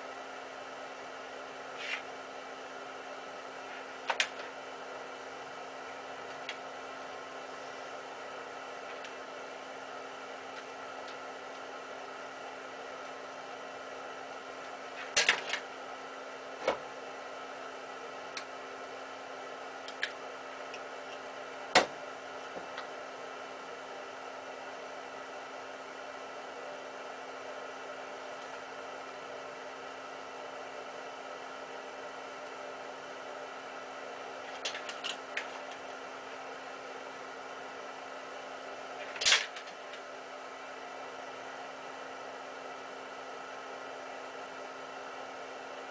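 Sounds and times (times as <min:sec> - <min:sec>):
steady machine hum: 0:00.0 - 0:45.9.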